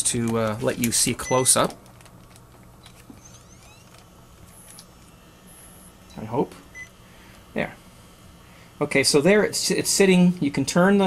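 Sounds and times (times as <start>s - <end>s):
steady low hum: 0.0s - 11.0s
faint rising whine: 3.1s - 10.9s.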